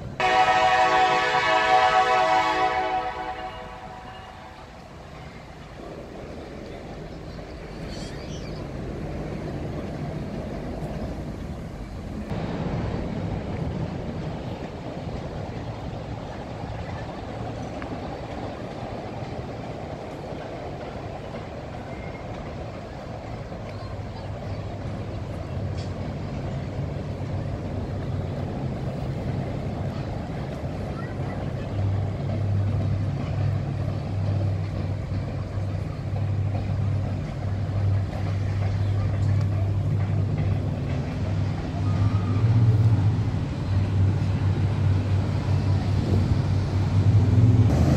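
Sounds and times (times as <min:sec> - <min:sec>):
boat engine humming: 0:00.0 - 0:47.9
city background noise: 0:00.0 - 0:47.9
faint voices: 0:14.0 - 0:47.2.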